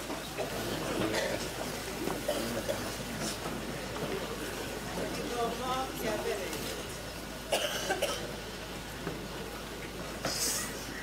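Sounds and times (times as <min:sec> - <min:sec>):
person coughing: 0:07.5 - 0:08.2.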